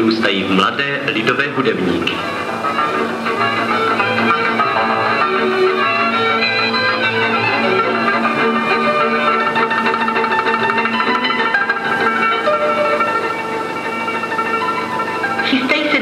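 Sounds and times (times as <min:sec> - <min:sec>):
violins: 0:00.0 - 0:16.0.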